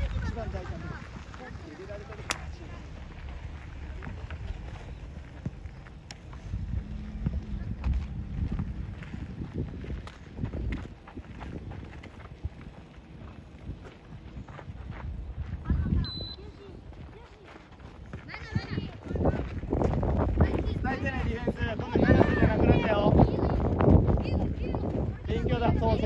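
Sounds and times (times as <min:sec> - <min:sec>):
distant voices calling out: 0:00.0 - 0:09.5
wind rumble on microphone: 0:00.0 - 0:26.0.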